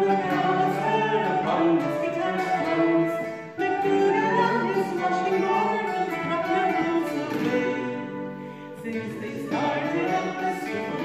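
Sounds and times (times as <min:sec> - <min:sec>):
acoustic folk group playing: 0:00.0 - 0:11.0.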